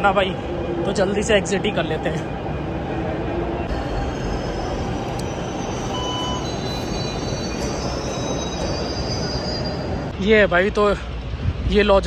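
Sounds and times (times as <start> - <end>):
metro train rumbling on track: 0.0 - 12.0
high-pitched wheel squeal: 3.6 - 10.1.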